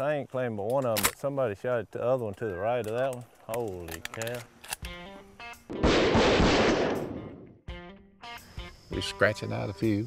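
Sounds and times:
shotgun shots: 5.7 - 7.4.

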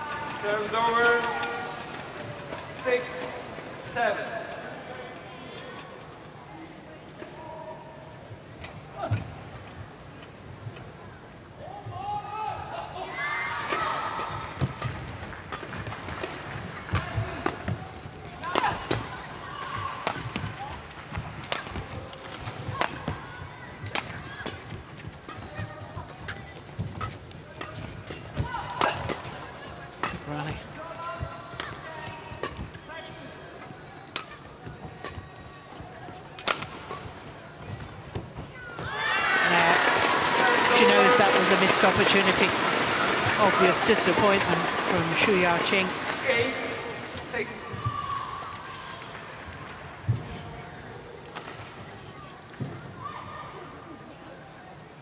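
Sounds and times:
rackets striking shuttlecock: 21.1 - 23.2, 23.8 - 30.5, 34.1 - 35.2, 36.3 - 37.2
crowd voices shouting: 38.7 - 49.4
crowd cheering: 38.8 - 50.0.

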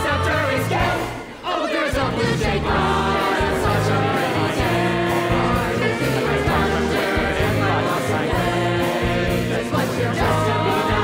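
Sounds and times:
band accompaniment: 0.0 - 11.0
ensemble singing as a choir: 0.0 - 11.0.

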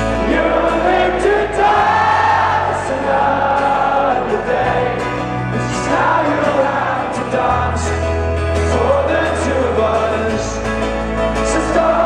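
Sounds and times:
accordion: 0.0 - 12.0
acoustic guitar: 0.0 - 12.0
voices singing held notes: 0.0 - 12.0.

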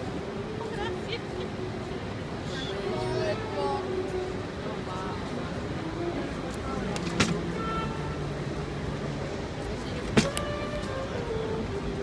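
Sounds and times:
murmur of people: 0.0 - 12.0
traffic: 0.0 - 12.0.

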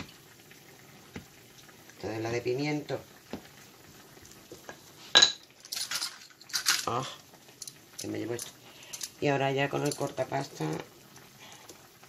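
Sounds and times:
utensils clattering: 5.2 - 7.0.

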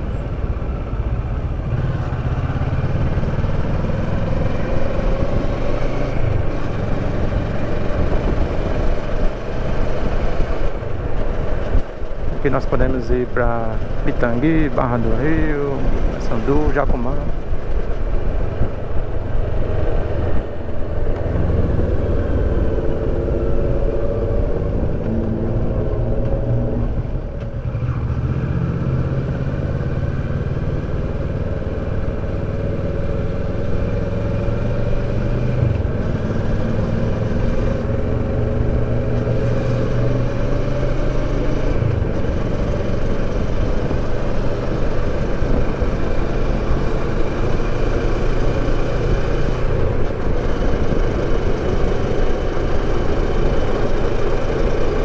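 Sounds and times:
wind and road rumble: 0.0 - 55.0
motorcycle engine running: 29.2 - 55.0.

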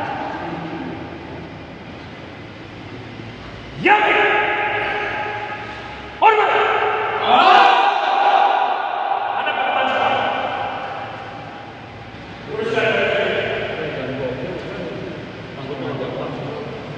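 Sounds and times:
man shouting commands: 3.7 - 11.3.

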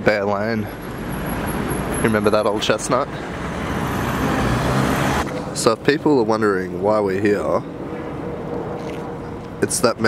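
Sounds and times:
city street traffic: 0.0 - 10.0.

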